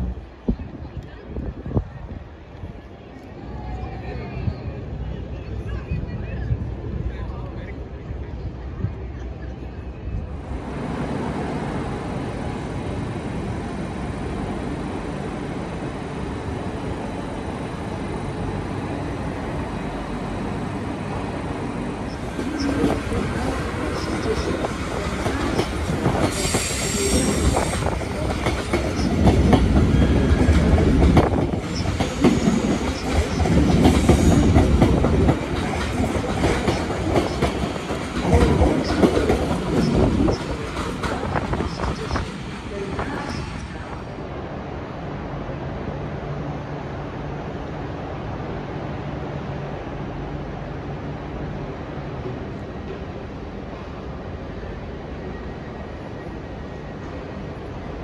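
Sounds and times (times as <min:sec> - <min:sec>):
high wheel squeal: 0:26.3 - 0:28.0.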